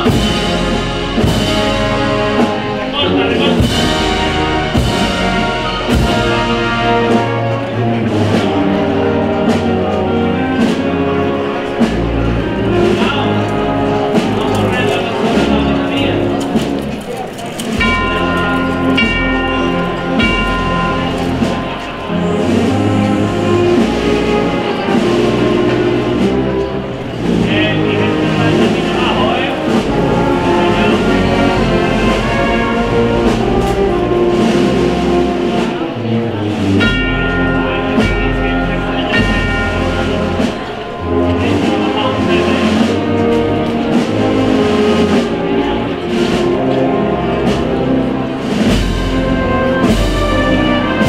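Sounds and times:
band playing slow march: 0:00.0 - 0:51.0
drum strokes: 0:00.0 - 0:51.0.

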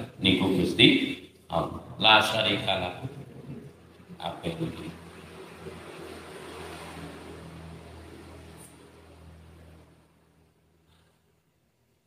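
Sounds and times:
low motor hum: 0:02.9 - 0:10.8.

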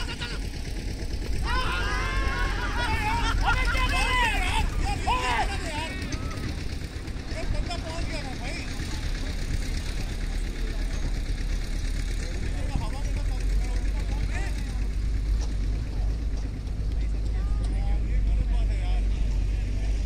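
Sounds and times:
distant voices calling out: 0:00.0 - 0:20.0
low rumble: 0:00.0 - 0:20.0.

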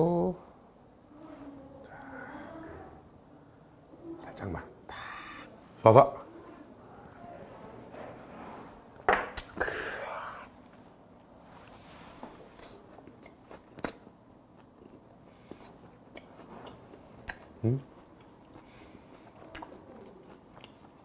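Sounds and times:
person chewing food: 0:12.5 - 0:21.0
wet mouth clicks: 0:13.2 - 0:14.0, 0:16.1 - 0:17.5, 0:19.4 - 0:19.8.

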